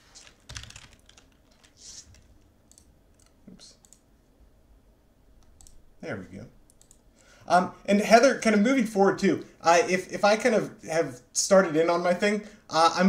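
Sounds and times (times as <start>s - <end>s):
keyboard and mouse clicking: 0.2s - 4.0s, 5.4s - 5.8s, 6.7s - 7.0s.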